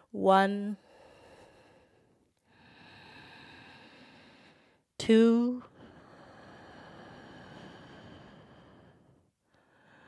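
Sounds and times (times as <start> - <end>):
faint throaty breathing: 0.8 - 4.9, 5.7 - 10.0.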